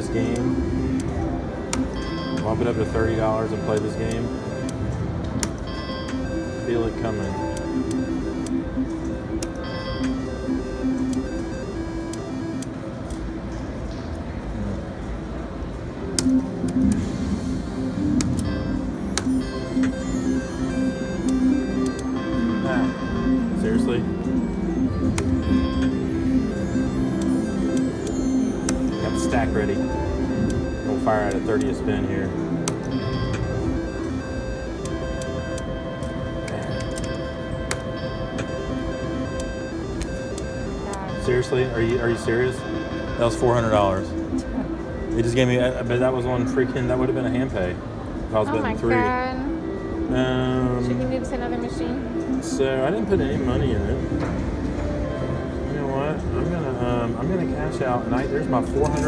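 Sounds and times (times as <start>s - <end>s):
slot machine chimes and jingles: 0.0s - 13.5s, 16.5s - 59.0s
slot machine clicks: 0.0s - 13.6s, 16.0s - 47.6s, 52.0s - 59.0s.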